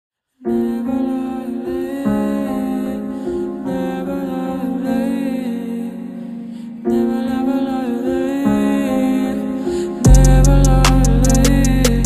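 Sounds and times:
girl singing slow melody: 0.4s - 12.0s.

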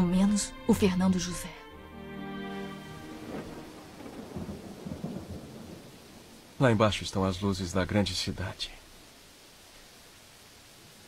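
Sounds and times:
steady rain hiss: 0.0s - 11.0s
rumbles of thunder: 2.9s - 8.8s.

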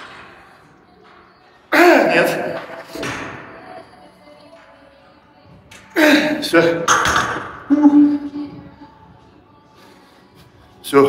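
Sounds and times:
quiet background music: 0.0s - 11.0s
man grunting with effort: 1.8s - 2.4s, 6.0s - 6.4s.

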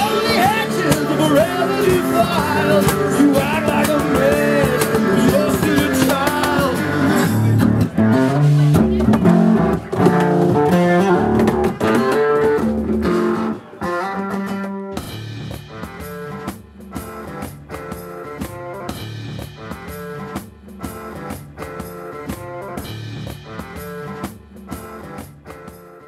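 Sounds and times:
person singing: 0.0s - 7.6s.

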